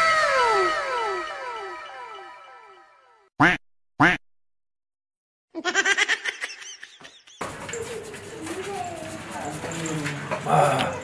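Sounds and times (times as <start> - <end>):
duck quack sounds: 3.4 - 4.2.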